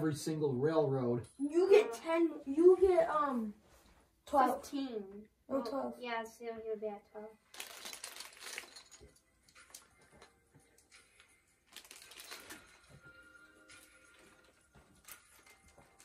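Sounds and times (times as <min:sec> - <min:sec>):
playing cards rustling: 0:07.5 - 0:13.0
plastic game pieces clicking: 0:07.6 - 0:09.9.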